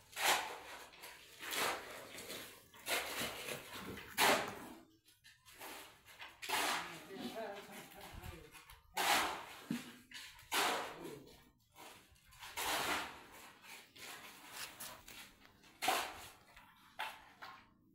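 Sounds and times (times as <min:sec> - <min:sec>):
shovel scraping wet mud on concrete: 0:00.0 - 0:17.6.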